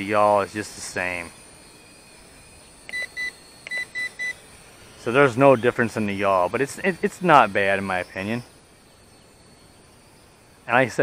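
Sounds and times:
short high electronic beeps: 0:01.0 - 0:08.5.

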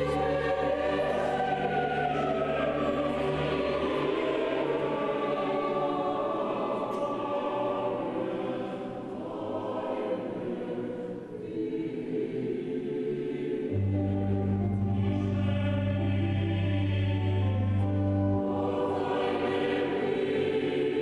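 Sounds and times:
choir singing sustained chords: 0:00.0 - 0:21.0.

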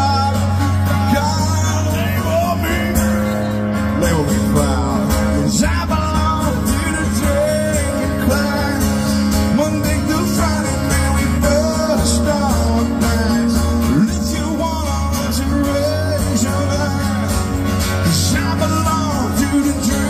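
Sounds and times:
bass: 0:00.0 - 0:20.0
drums: 0:00.0 - 0:20.0
guitars: 0:00.0 - 0:20.0
person singing: 0:00.0 - 0:20.0.

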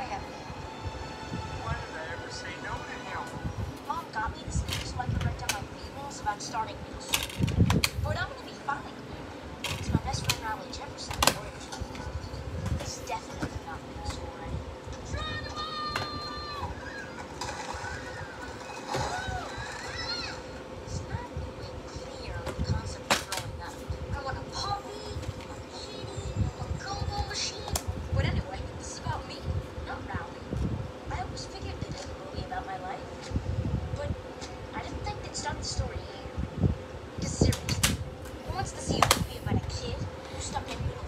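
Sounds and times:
steady hum: 0:00.0 - 0:41.0.

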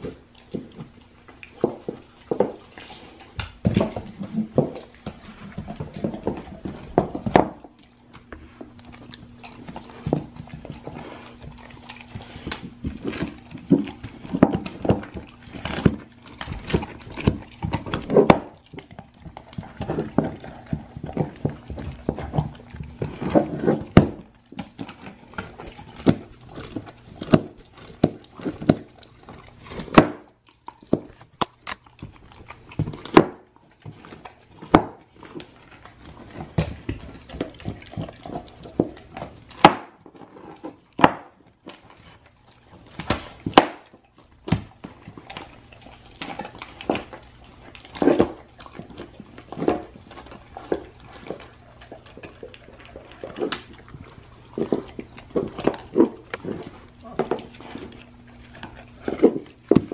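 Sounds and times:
dog chewing: 0:00.0 - 0:59.9
bone cracking: 0:03.4 - 0:40.2, 0:42.5 - 0:59.9.

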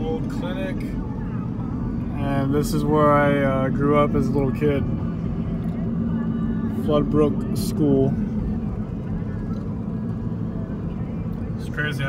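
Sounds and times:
car engine at cruising speed: 0:00.0 - 0:12.0
car road noise inside cabin: 0:00.0 - 0:12.0.

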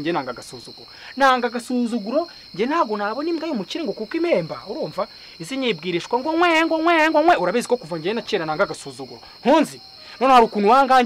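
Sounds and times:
high-pitched insect chirring: 0:00.0 - 0:11.0
man talking: 0:00.0 - 0:11.0.

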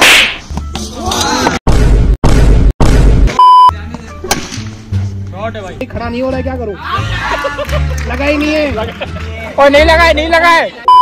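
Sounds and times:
background music: 0:00.3 - 0:11.0
high steady beep: 0:03.4 - 0:03.7.

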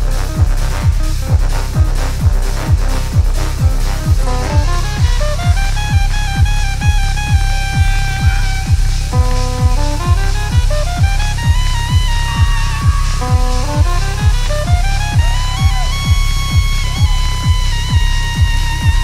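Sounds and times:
horn lines: 0:00.0 - 0:19.0
kick drum beat: 0:00.0 - 0:19.0
synth lines: 0:04.1 - 0:19.0.

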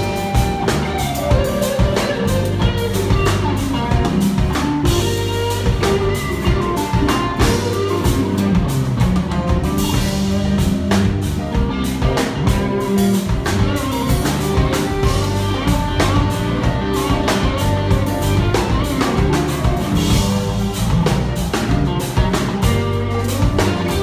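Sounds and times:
drum kit steady beat: 0:00.0 - 0:24.0
electric guitar: 0:00.0 - 0:24.0.

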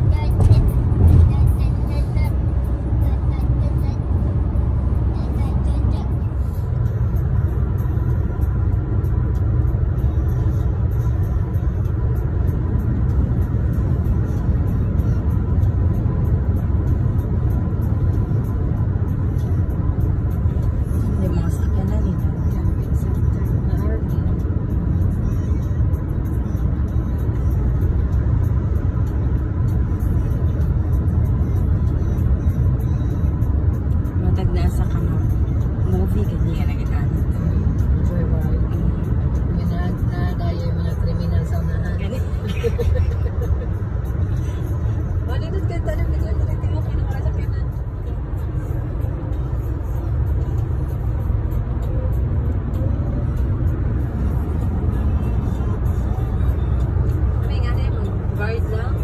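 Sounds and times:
road and engine rumble in car: 0:00.0 - 0:59.0.

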